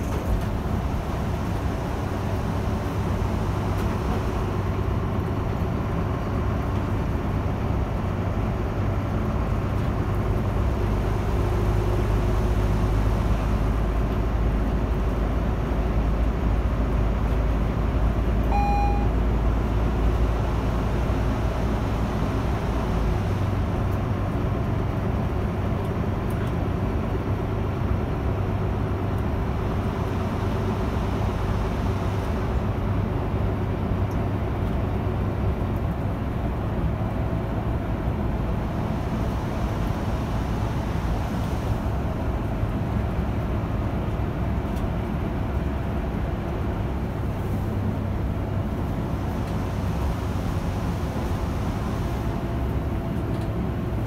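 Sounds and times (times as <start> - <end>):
bus engine and road noise: 0.0 - 54.0
short electronic beep: 18.5 - 19.2.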